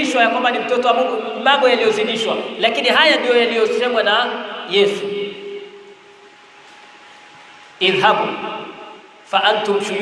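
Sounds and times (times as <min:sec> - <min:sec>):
man's amplified voice: 0:00.0 - 0:05.9, 0:07.8 - 0:10.0
faint microphone hiss: 0:00.0 - 0:10.0.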